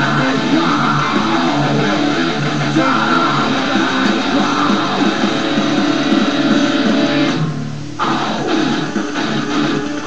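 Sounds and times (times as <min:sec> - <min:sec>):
distorted electric guitar riff: 0:00.0 - 0:10.0.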